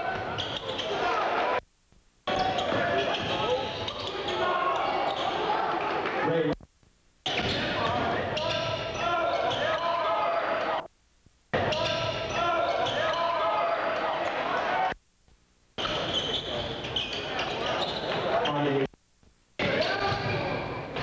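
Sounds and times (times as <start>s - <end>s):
crowd voices and shouts: 0.0s - 1.6s, 2.3s - 6.6s, 7.3s - 10.9s, 11.6s - 15.0s, 19.6s - 21.0s.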